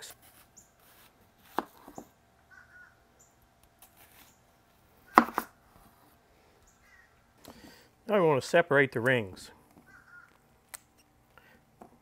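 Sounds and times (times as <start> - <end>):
knife cutting onion on cutting board: 1.0 - 2.0, 5.1 - 5.5.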